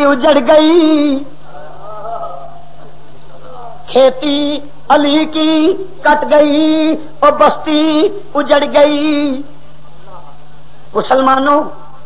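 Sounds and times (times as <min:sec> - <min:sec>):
man singing: 0:00.0 - 0:10.4
steady low hum: 0:00.0 - 0:12.0.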